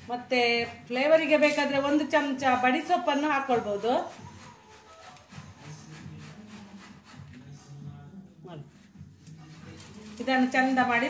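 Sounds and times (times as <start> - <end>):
hands rustling herb leaves: 9.4 - 11.0.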